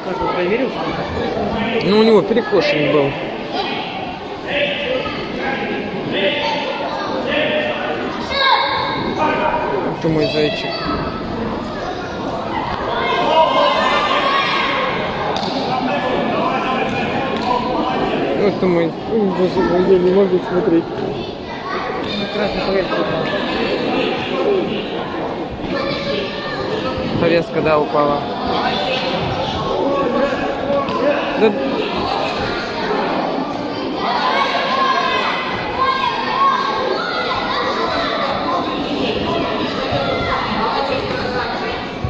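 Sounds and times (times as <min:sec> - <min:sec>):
crowd shouting and cheering: 0:00.0 - 0:42.0
many voices talking in a hall: 0:00.0 - 0:42.0.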